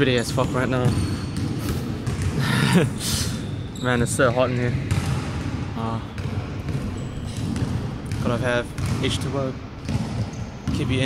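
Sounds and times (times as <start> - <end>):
basketballs bouncing on court floor: 0.0 - 11.0.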